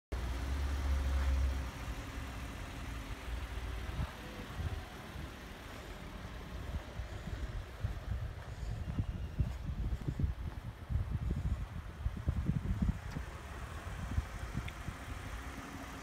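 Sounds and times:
car engine idling: 0:00.1 - 0:16.0.

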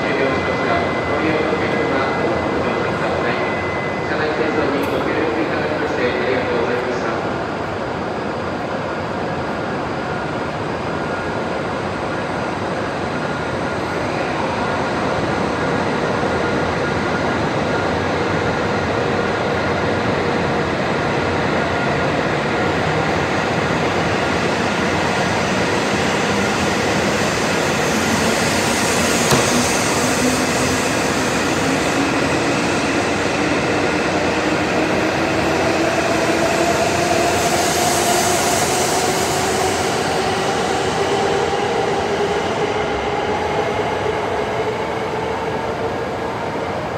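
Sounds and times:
rising train whine: 0:00.0 - 0:46.9
train running noise: 0:00.0 - 0:46.9.

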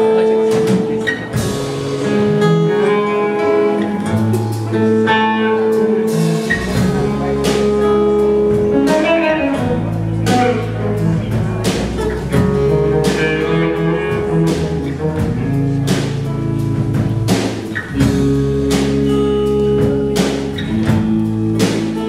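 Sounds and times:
acoustic and electric guitars: 0:00.0 - 0:22.0
low bass notes: 0:00.0 - 0:22.0
drum kit with cymbal crashes: 0:00.4 - 0:02.5, 0:03.4 - 0:22.0.

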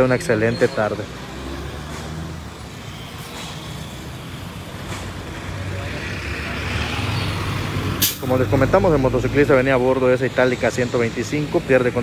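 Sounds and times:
bus approaching: 0:00.0 - 0:12.0.

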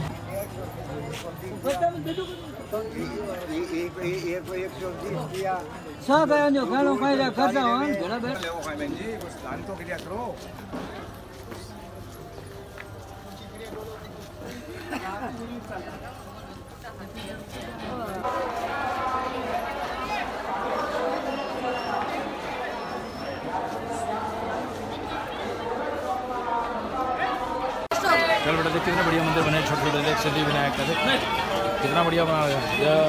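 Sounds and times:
passers-by talking: 0:00.0 - 0:33.0
men talking: 0:02.7 - 0:06.0, 0:28.1 - 0:33.0.

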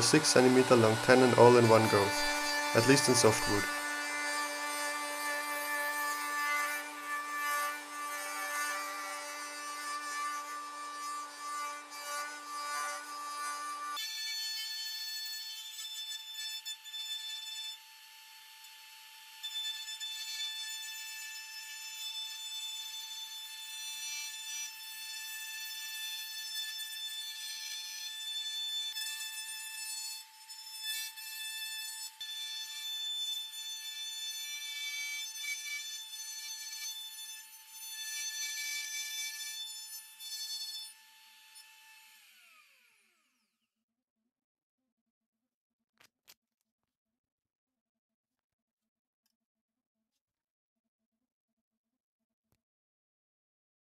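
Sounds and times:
router motor whining: 0:00.0 - 0:23.6, 0:32.2 - 0:43.7.

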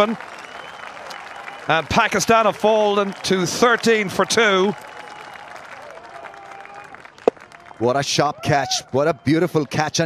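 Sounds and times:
crowd clapping: 0:00.0 - 0:08.0.

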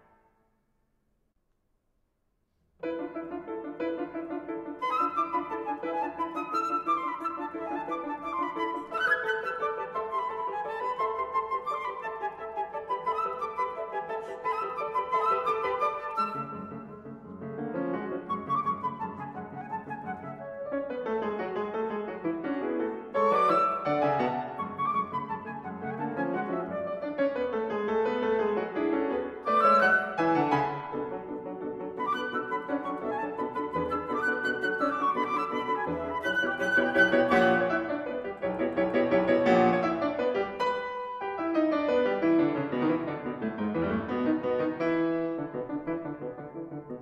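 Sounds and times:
piano: 0:00.0 - 0:01.0, 0:02.5 - 0:47.0
flute: 0:04.7 - 0:17.1, 0:18.1 - 0:20.9, 0:22.9 - 0:27.5, 0:29.2 - 0:40.3.

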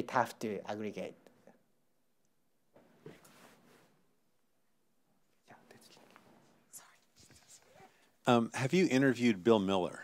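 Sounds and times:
faint soft whispering voices: 0:05.3 - 0:08.2.

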